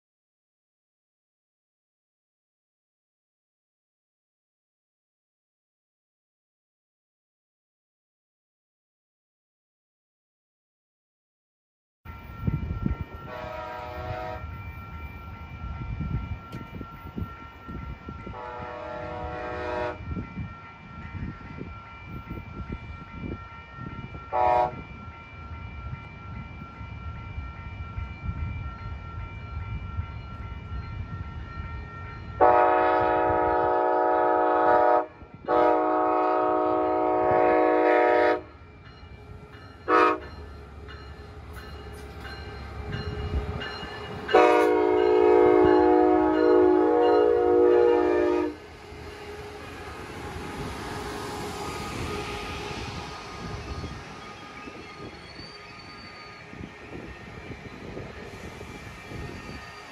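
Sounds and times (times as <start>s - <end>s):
train rolling past rumbling: 12.1s - 59.9s
locomotive horn blasts: 13.2s - 14.5s, 18.3s - 20.0s, 24.3s - 24.9s, 32.4s - 38.5s, 39.9s - 40.3s, 44.3s - 49.7s.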